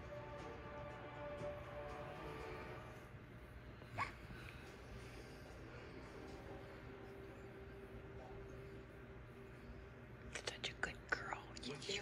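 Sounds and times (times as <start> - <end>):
person whispering: 10.3 - 12.0.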